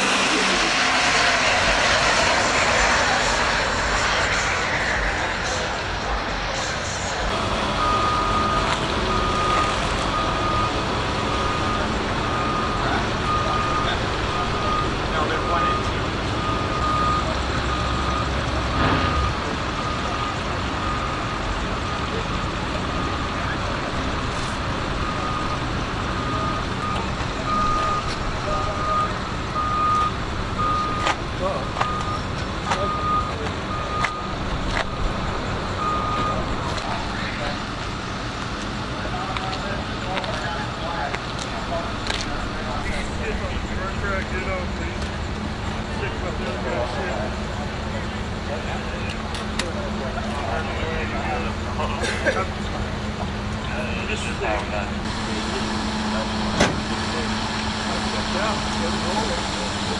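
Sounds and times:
background voices: 0.0s - 16.4s
vehicle reversing alarm beeps: 6.5s - 38.2s.

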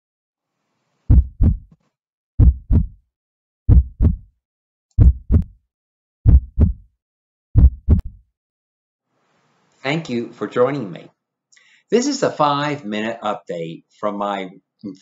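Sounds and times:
heartbeat double beats: 1.1s - 1.7s, 2.4s - 3.0s, 3.7s - 4.3s, 5.0s - 5.6s, 6.2s - 6.9s, 7.6s - 8.2s.

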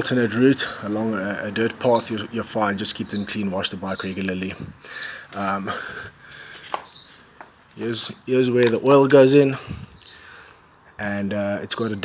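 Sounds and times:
man talking: 0.0s - 6.1s, 7.7s - 9.9s, 11.0s - 12.0s.

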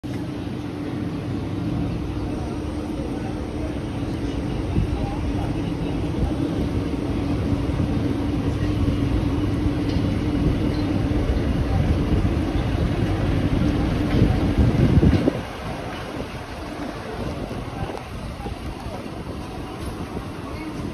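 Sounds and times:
train wheels rumbling on track: 0.0s - 20.9s.

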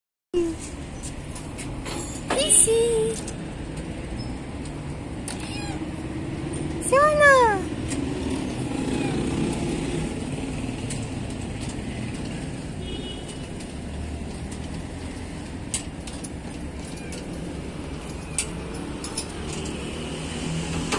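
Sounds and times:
traffic rumble: 0.4s - 20.9s
cat meowing: 5.3s - 6.0s, 8.6s - 9.4s.

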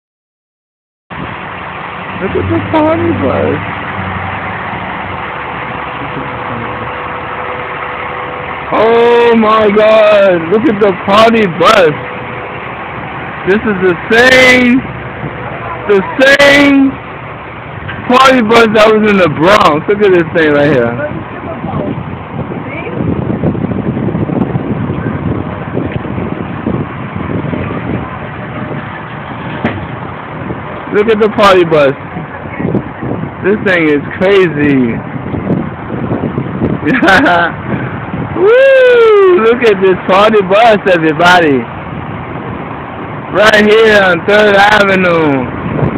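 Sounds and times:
bus engine humming: 1.1s - 45.9s
street noise: 1.1s - 45.9s.

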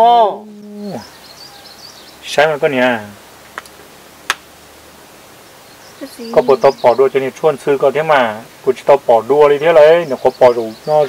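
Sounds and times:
man speaking: 0.0s - 1.1s, 2.2s - 3.2s, 6.3s - 11.0s.

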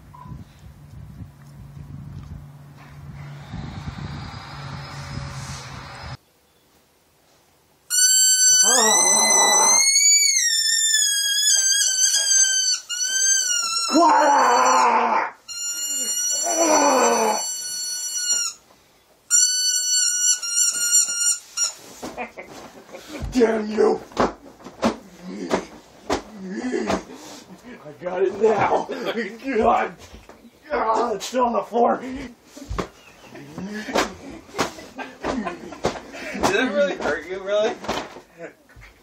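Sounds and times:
lower wavering sound: 2.7s - 6.2s
toy squeaker squealing: 7.9s - 14.0s, 15.5s - 18.6s, 19.3s - 21.8s.

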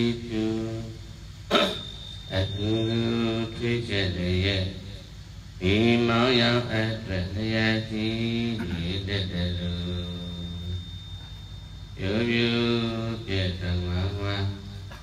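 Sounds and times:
man chanting into microphone: 0.0s - 1.1s, 2.3s - 10.9s, 12.0s - 15.0s.

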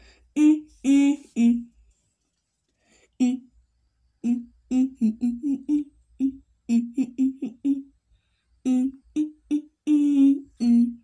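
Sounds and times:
person humming: 0.0s - 1.8s, 3.2s - 3.5s, 4.2s - 8.0s, 8.6s - 11.0s.

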